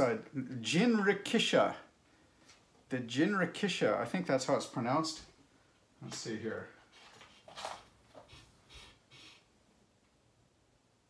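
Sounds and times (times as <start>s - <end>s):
faint rustling and handling: 5.1s - 9.5s.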